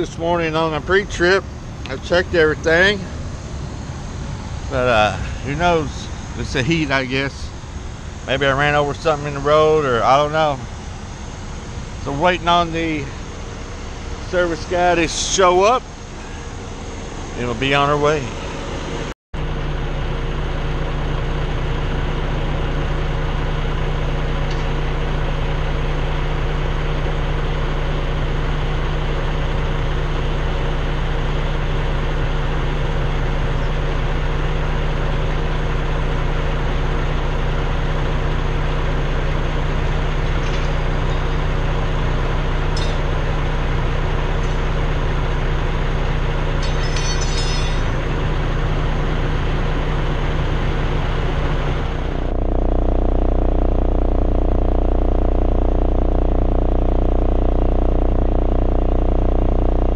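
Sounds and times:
diesel engine idling: 0.0 - 59.9
faint clinks: 42.7 - 43.2, 46.5 - 48.1.

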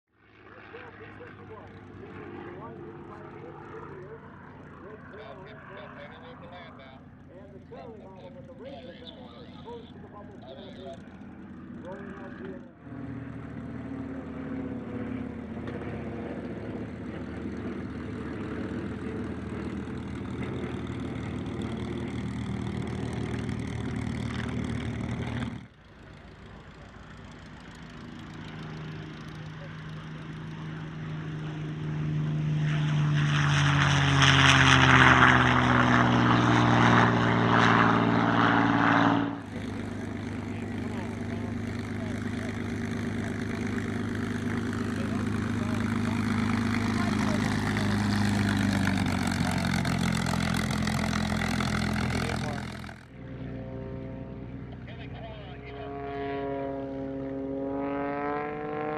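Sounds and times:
propeller plane engine idling: 0.2 - 58.5
plane engine passing at high power: 0.2 - 58.9.

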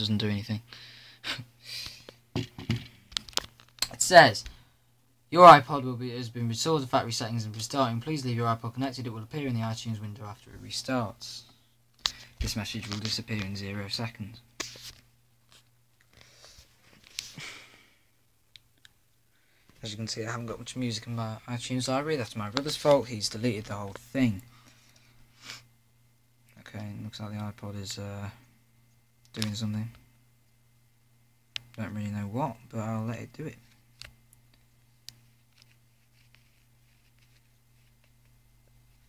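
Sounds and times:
faint low hum: 0.0 - 39.0.

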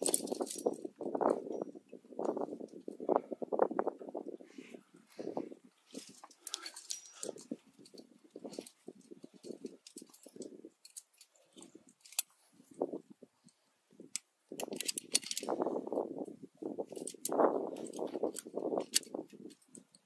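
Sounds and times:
carabiners clinking: 0.0 - 3.1, 5.6 - 12.8, 14.2 - 15.9, 16.8 - 20.0.

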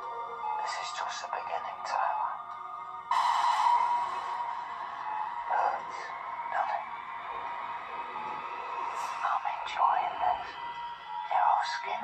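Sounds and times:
indistinct voices: 0.6 - 12.0
held music tone: 2.5 - 12.0.

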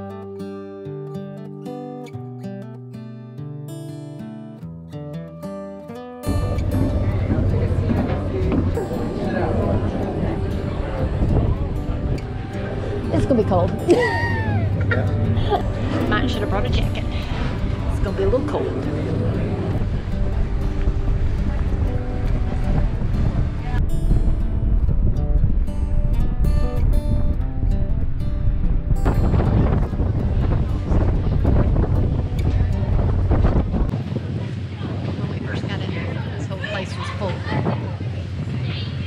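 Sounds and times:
background music: 5.3 - 33.6
wind buffeting microphone: 6.3 - 39.0.

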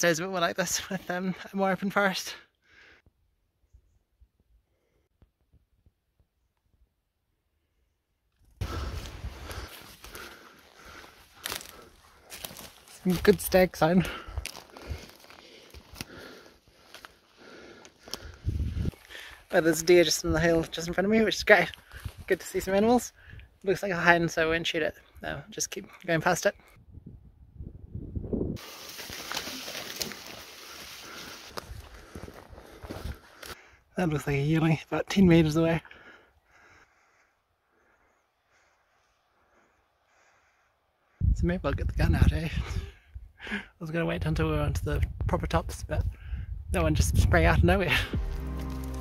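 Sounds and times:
twigs clicking against body: 8.4 - 19.6, 28.6 - 33.6
footsteps crunching through dry leaves: 8.7 - 17.2, 28.6 - 33.6, 48.1 - 49.0.

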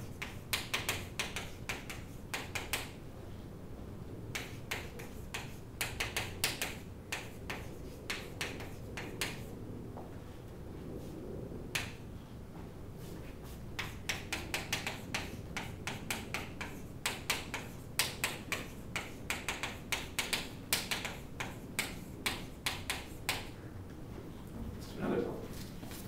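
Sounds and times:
chalk tapping on a blackboard: 0.0 - 3.0, 4.3 - 9.6, 11.7 - 12.0, 13.1 - 23.6.

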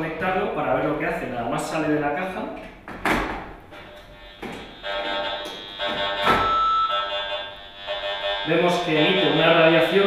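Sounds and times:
meter buzzing: 3.7 - 10.0.

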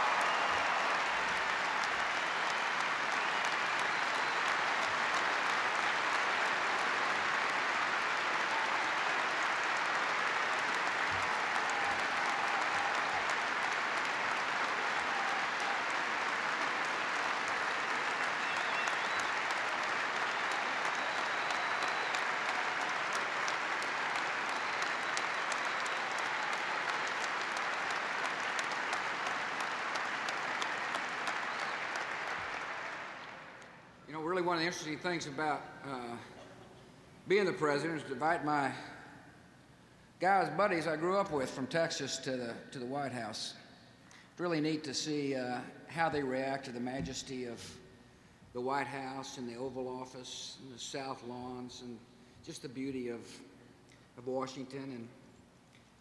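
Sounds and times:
crowd applauding: 0.0 - 33.8.

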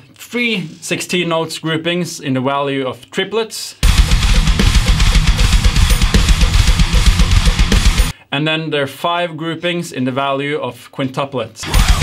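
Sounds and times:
cymbals washing: 3.8 - 8.1
rapid bass drum strokes: 3.8 - 8.1, 11.6 - 12.0.

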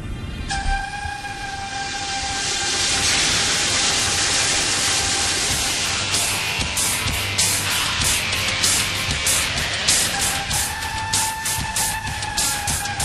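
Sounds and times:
wash of noise: 0.0 - 13.0
held pitched note: 0.5 - 13.0.

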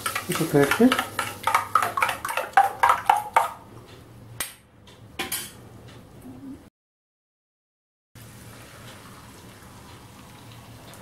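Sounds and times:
metal spoon beating batter in bowl: 0.0 - 3.6.

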